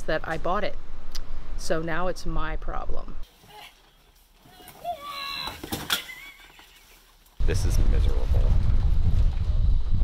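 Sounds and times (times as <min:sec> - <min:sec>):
woman squealing laugh: 0:05.6 - 0:07.0.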